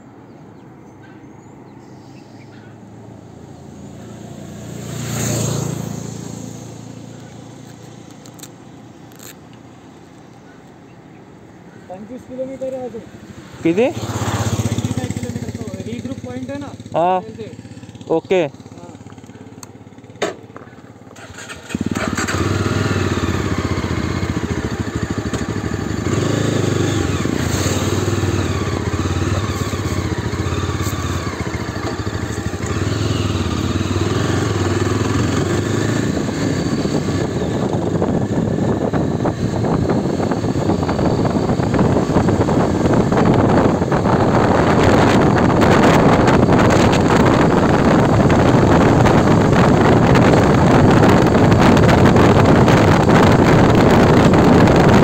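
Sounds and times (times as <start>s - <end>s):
vehicle passing by: 2.3s - 8.3s, 12.2s - 20.0s, 26.0s - 55.0s
motorcycle engine idling: 11.6s - 48.8s.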